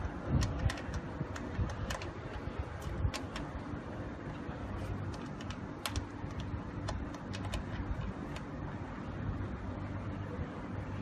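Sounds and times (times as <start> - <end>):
steady low hum: 0.0 - 11.0
connector clicks and taps: 0.3 - 3.5, 5.1 - 8.5.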